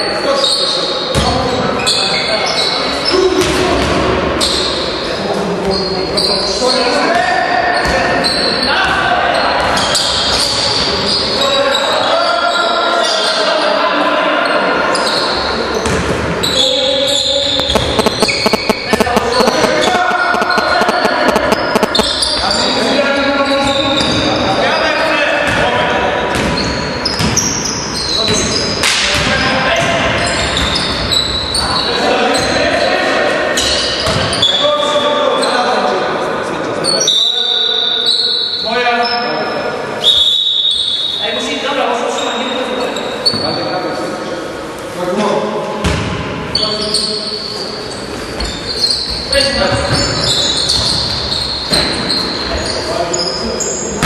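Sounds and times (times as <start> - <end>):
ball bouncing on court floor: 17.6 - 22.2.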